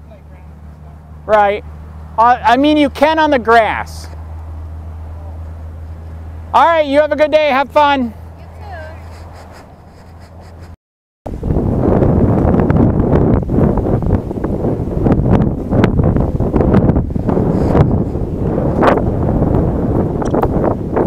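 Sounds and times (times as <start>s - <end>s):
wind buffeting microphone: 11.3s - 21.0s.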